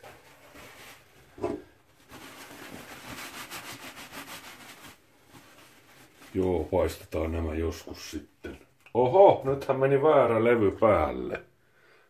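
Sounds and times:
paper towel rubbing eggshells: 0.0s - 7.2s.

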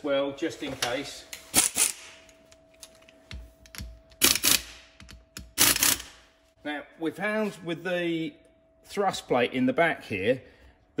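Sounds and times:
pneumatic air tool bursts: 5.6s - 6.2s.

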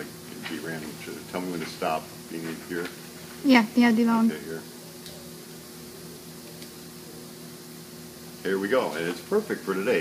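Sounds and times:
low machine hum: 0.0s - 10.0s
even hiss: 6.2s - 10.0s.

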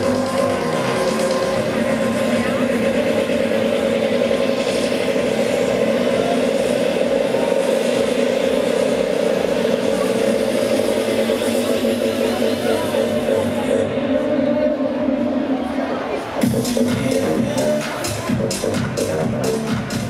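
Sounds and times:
loud electronic dance music: 0.0s - 20.0s.

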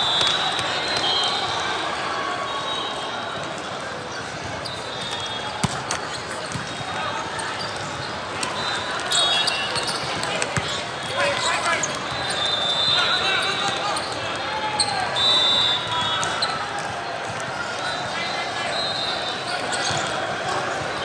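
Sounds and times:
murmur of voices in hall: 0.0s - 21.0s
shoes squeaking on court: 4.1s - 14.2s, 19.3s - 21.0s.

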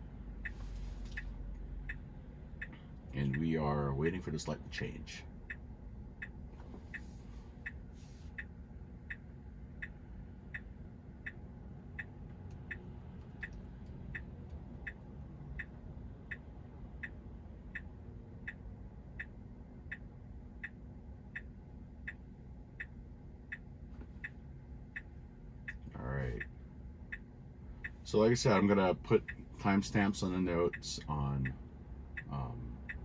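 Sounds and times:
turn signal ticking: 0.0s - 33.0s.

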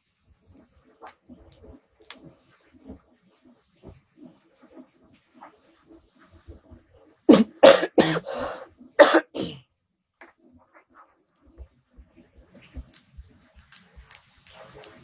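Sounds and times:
person coughing: 7.3s - 9.6s.

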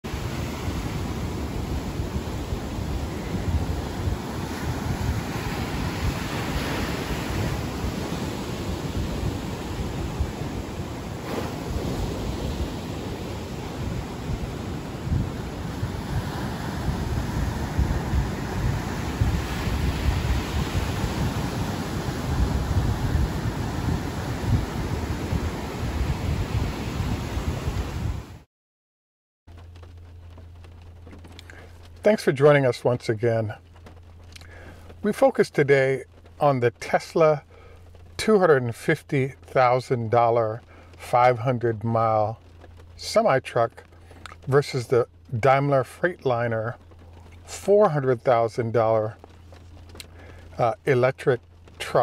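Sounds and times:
steady rushing noise: 0.0s - 28.4s, 29.5s - 52.0s.

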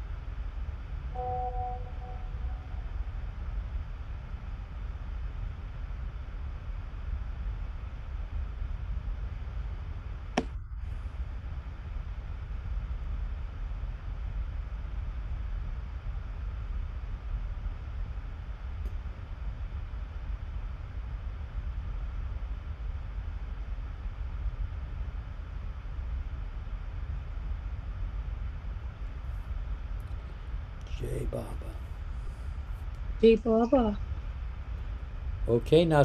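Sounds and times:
low background rumble: 0.0s - 36.0s
brief tone: 1.1s - 3.3s.

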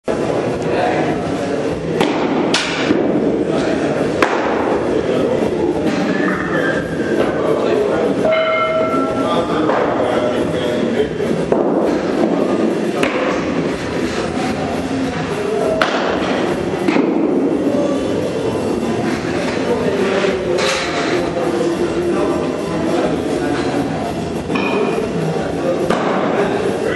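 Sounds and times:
indoor facility noise: 0.0s - 26.9s.

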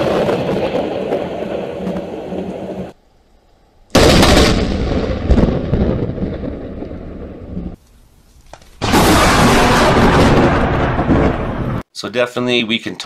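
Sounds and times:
thunder crack and rumble: 0.0s - 3.0s, 4.0s - 7.8s, 8.8s - 11.8s.

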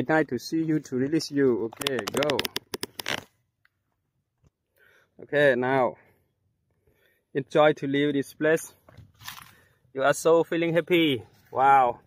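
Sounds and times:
sharp clicks: 1.8s - 3.2s.

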